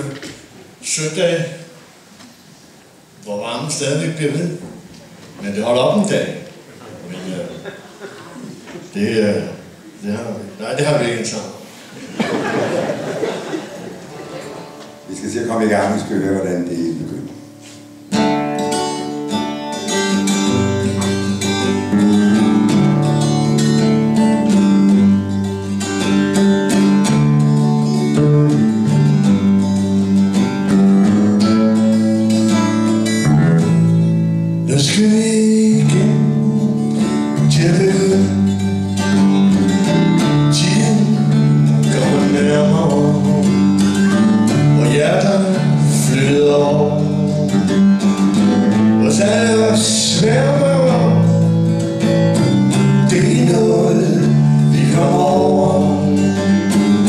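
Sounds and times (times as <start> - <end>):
strummed acoustic guitar: 14.2 - 57.0
electric bass: 20.5 - 34.8
man singing: 31.0 - 32.9, 34.7 - 38.8, 39.7 - 48.0, 48.7 - 51.5, 52.4 - 57.0.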